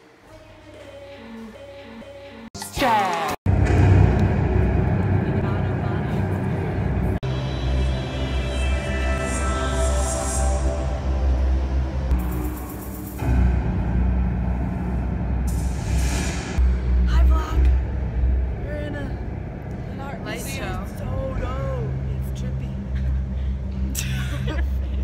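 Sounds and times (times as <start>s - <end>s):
music with deep bass: 3.5s - 25.0s.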